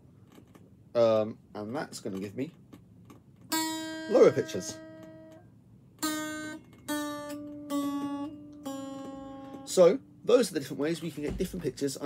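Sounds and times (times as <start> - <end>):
electric guitar string plucked: 3.5 - 5.4, 6.0 - 10.2.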